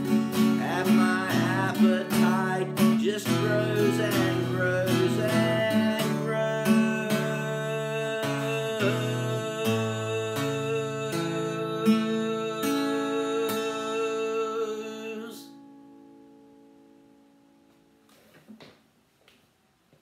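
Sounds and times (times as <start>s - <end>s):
acoustic guitar strumming: 0.0s - 18.2s.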